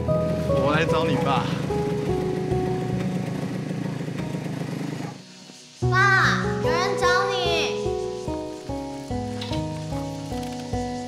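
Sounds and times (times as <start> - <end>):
motorcycle engine idling: 0.0 - 5.6
soft background music: 0.0 - 11.0.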